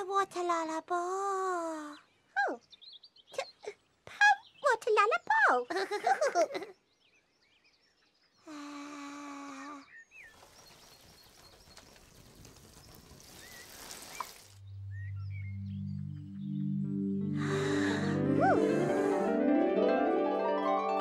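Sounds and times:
birds chirping faintly: 0.0s - 17.8s
water hissing from watering can: 10.3s - 14.6s
low synthesized rising melody: 14.6s - 21.0s
held musical tone: 14.7s - 21.0s.

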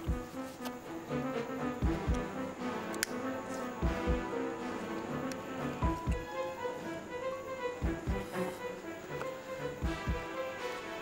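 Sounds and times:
deep drum beat: 0.0s - 0.2s, 1.8s - 2.3s, 3.8s - 4.3s, 5.8s - 6.3s, 7.8s - 8.3s, 9.8s - 10.3s
dramatic music with held notes: 0.0s - 11.0s.

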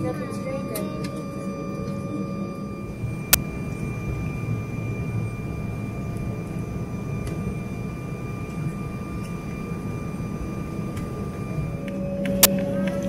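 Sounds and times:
faint steady whine: 0.0s - 13.0s
jet engines and air conditioning hum: 0.0s - 13.0s.

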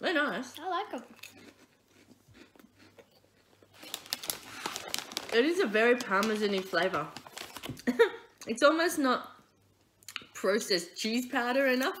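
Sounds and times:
chewing crunchy snacks: 0.6s - 5.5s
plastic snack bag crinkling: 2.4s - 8.2s.

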